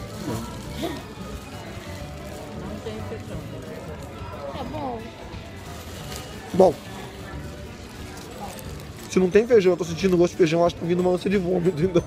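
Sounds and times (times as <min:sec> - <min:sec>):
restaurant dining room background noise: 0:00.0 - 0:12.0.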